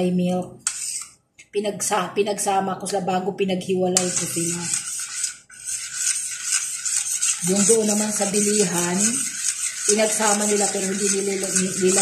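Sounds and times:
metal spoon scraping a pot: 0.6s - 1.2s, 4.0s - 12.0s.

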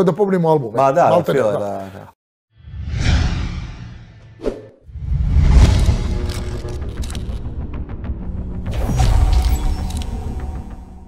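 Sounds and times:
whoosh: 2.6s - 7.5s.

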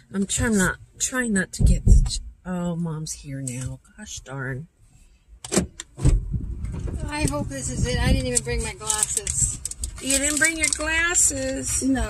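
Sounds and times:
heavy low thump: 1.6s - 2.4s, 5.6s - 8.2s
car door clicks: 5.4s - 11.4s
rustling: 6.6s - 12.0s.

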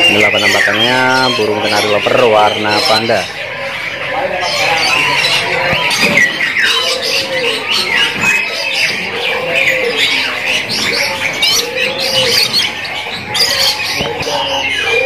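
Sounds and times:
songbirds chirping and trilling: 0.0s - 15.0s.

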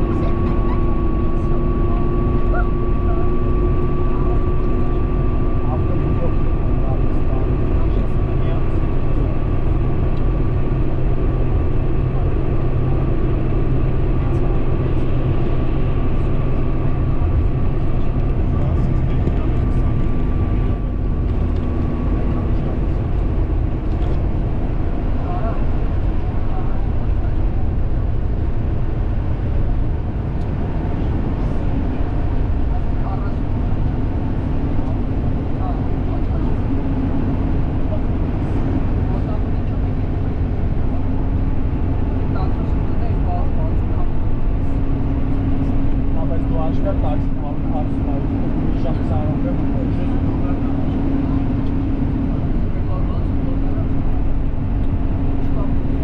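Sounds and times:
car tyre and engine drone: 0.0s - 56.0s
faint steady whine: 0.0s - 56.0s.

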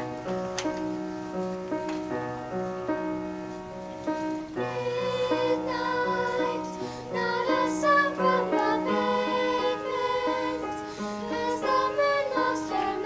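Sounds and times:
children's choir singing: 4.4s - 13.0s.

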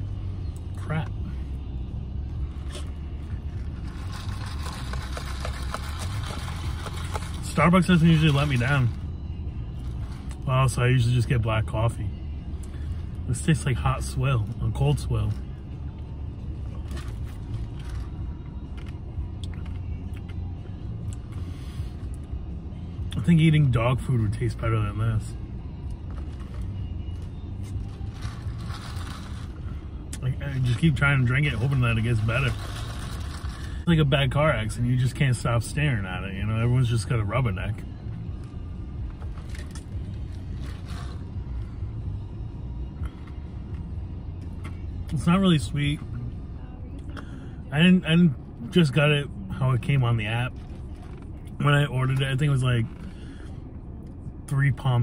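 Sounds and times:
car engine idling: 0.0s - 55.0s
plastic cup scraping and clicking: 4.2s - 7.5s.

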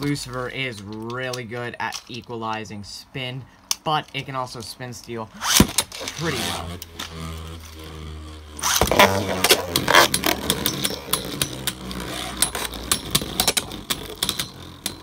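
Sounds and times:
spinning top humming: 5.3s - 15.0s
top launched with clatter: 5.4s - 7.2s, 8.6s - 14.4s.

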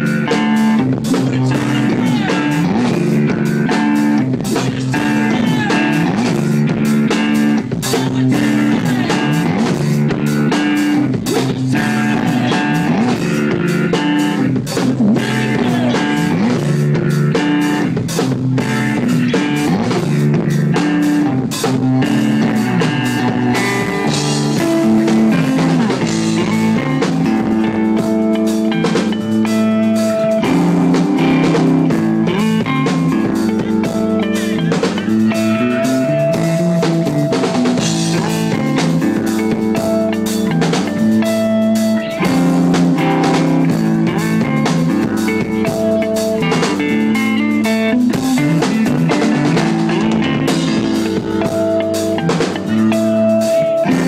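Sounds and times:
drum kit steady beat: 0.0s - 54.0s
electric guitar: 0.0s - 54.0s.

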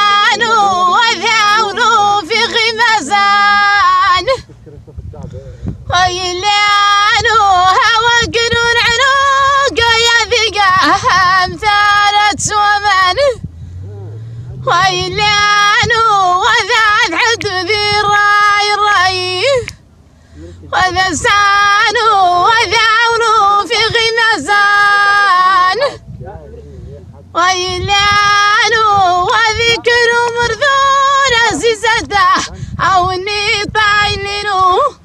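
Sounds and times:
woman singing unaccompanied: 0.0s - 4.5s, 5.9s - 13.5s, 14.6s - 19.8s, 20.7s - 26.0s, 27.4s - 35.0s.

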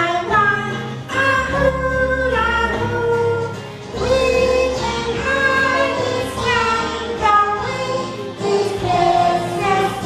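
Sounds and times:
woman and children singing: 0.0s - 10.0s.

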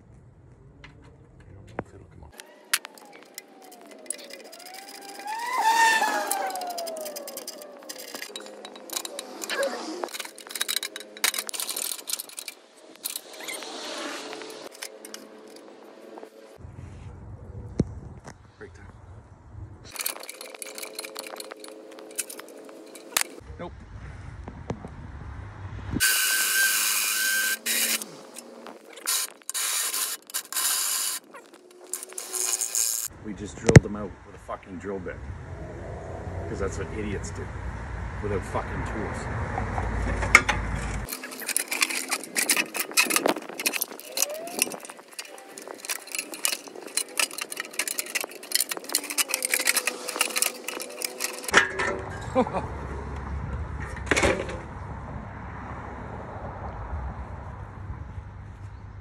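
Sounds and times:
clicks and scrapes on winch: 2.3s - 16.2s, 19.9s - 23.4s, 26.0s - 33.1s, 40.0s - 52.0s.

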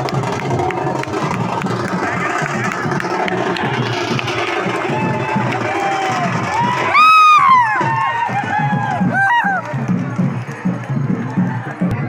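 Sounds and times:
large crowd cheering and shouting: 0.0s - 12.0s.

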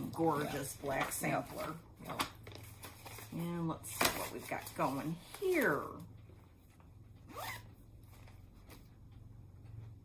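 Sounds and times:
zipper pulled: 7.3s - 7.7s.

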